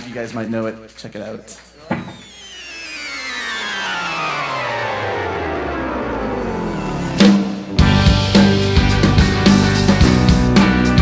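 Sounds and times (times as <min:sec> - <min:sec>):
electric guitar sliding down: 0:02.1 - 0:11.0.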